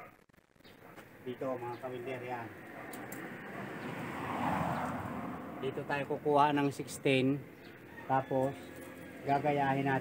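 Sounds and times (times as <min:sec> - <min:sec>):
vehicle engine passing: 0:02.1 - 0:10.0.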